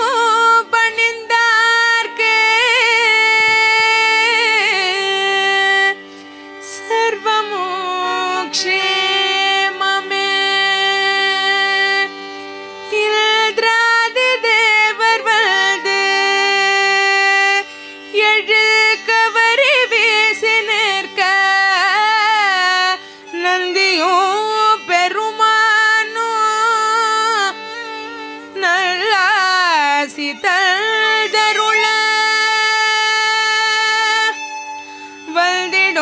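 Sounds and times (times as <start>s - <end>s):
woman singing devotional song: 0.0s - 36.0s
woman singing a long note: 30.4s - 34.3s.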